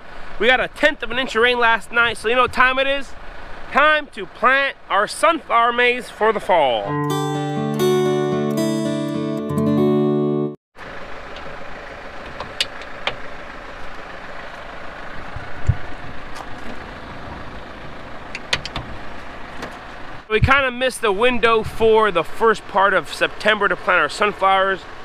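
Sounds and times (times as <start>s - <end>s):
outdoor background noise: 0.0s - 6.8s, 10.8s - 25.0s
acoustic guitar jingle: 6.9s - 10.6s.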